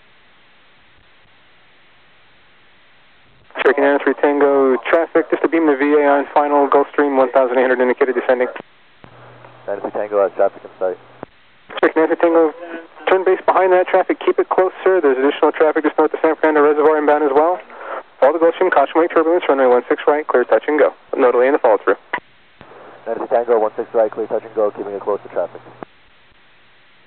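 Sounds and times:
low steady hum: 0:00.0 - 0:27.0
tinny radio speech: 0:03.5 - 0:08.6, 0:11.7 - 0:25.6.

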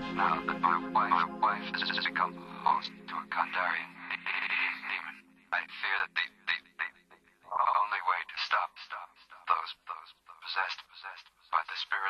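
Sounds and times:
low synth chord: 0:00.0 - 0:04.1
radio-filtered spoken voice: 0:00.0 - 0:12.0.

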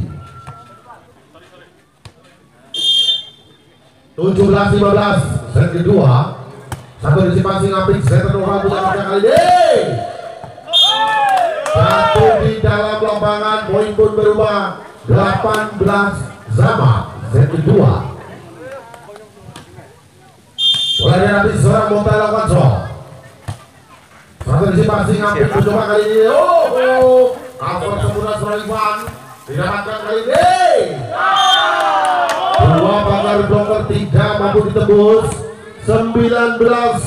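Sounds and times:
referee's whistle blast: 0:02.7 - 0:03.6, 0:10.7 - 0:11.2, 0:20.6 - 0:21.3, 0:31.3 - 0:31.8.

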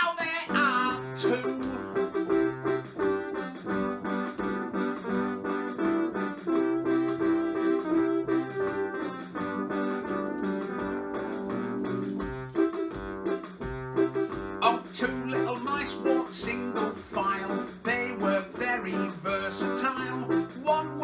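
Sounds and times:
electronic keyboard melody: 0:00.5 - 0:21.0.

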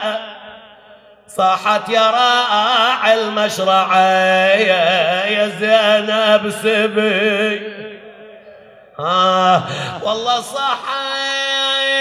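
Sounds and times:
man chanting in a lamenting voice: 0:00.0 - 0:12.0.

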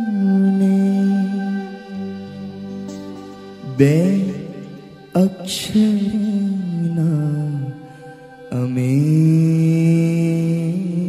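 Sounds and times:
man singing: 0:00.0 - 0:02.7, 0:03.6 - 0:11.0
harmonium: 0:00.0 - 0:11.0.

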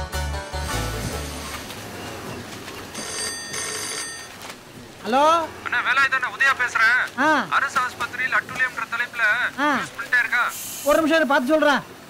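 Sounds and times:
telephone ringing: 0:02.8 - 0:04.5.

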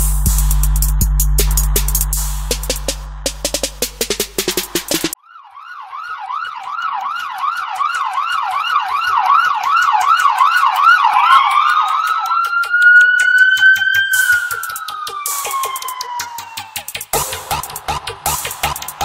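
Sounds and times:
trap drum beat: 0:00.0 - 0:05.2, 0:07.0 - 0:19.0
slow rising siren tone: 0:05.1 - 0:18.2
warbling siren-style wail: 0:05.2 - 0:17.0.

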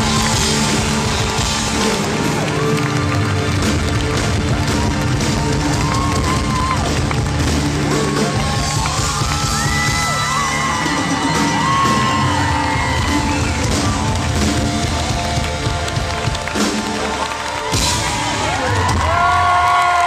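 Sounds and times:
live rock band playing: 0:00.0 - 0:19.0
crowd cheering and whooping: 0:00.0 - 0:20.0.

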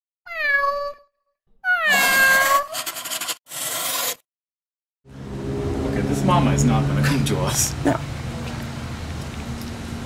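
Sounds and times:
cat meowing: 0:00.3 - 0:02.7.

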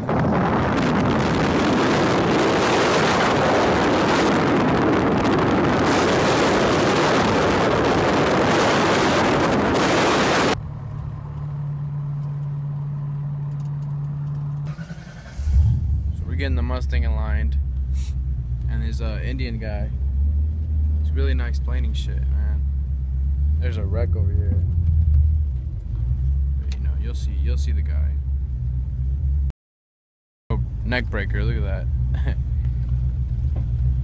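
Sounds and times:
wind rushing: 0:00.0 - 0:10.6
car engine hum: 0:00.0 - 0:29.5, 0:30.5 - 0:34.0.

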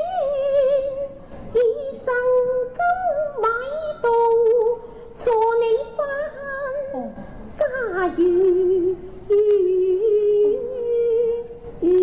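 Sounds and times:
woman singing opera: 0:00.0 - 0:12.0.

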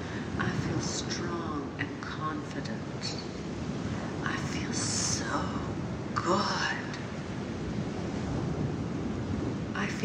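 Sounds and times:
sea: 0:00.0 - 0:10.0
wind: 0:00.0 - 0:10.0
wind gusts on microphone: 0:00.0 - 0:10.0.

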